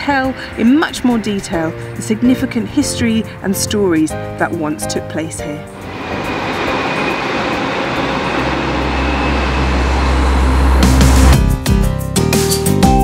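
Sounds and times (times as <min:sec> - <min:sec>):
electric train passing: 0:00.0 - 0:11.5
music: 0:00.0 - 0:13.0
high whine: 0:05.6 - 0:11.6.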